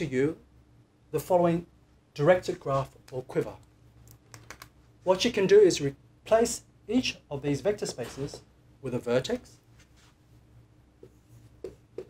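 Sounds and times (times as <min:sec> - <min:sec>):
marker pen on whiteboard: 0:02.4 - 0:03.6, 0:07.6 - 0:08.5, 0:11.0 - 0:12.0.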